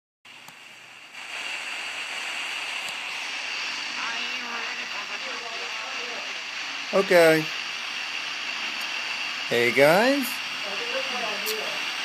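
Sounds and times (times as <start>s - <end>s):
radio static hiss: 0.3s - 12.0s.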